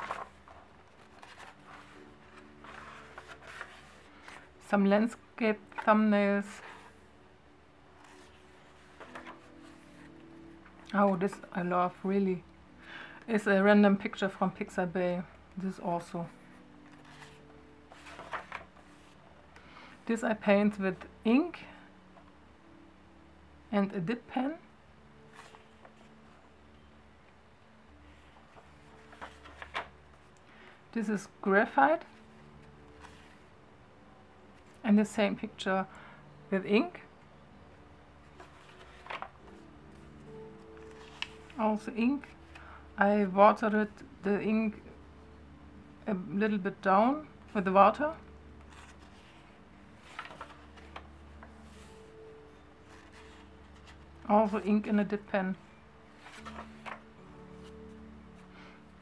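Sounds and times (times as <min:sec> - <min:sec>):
paper brushing: 0:00.0 - 0:04.5, 0:16.5 - 0:19.2
paper rustling: 0:00.0 - 0:04.6, 0:08.0 - 0:10.1, 0:16.5 - 0:19.2, 0:25.3 - 0:26.1, 0:28.1 - 0:30.2, 0:32.9 - 0:33.4, 0:38.3 - 0:40.0, 0:40.8 - 0:41.6, 0:48.6 - 0:52.1, 0:52.8 - 0:54.3, 0:56.2 - 0:57.8
faint steady hum: 0:00.0 - 0:59.0.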